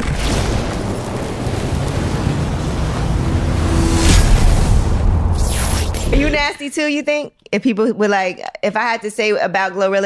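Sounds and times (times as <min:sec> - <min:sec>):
wash of noise: 0:00.8 - 0:06.4
low cinematic rumble: 0:01.1 - 0:06.5.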